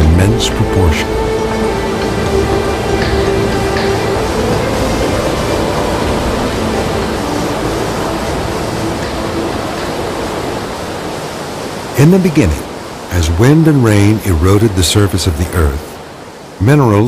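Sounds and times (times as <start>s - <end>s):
floodwater rushing: 0.0s - 17.0s.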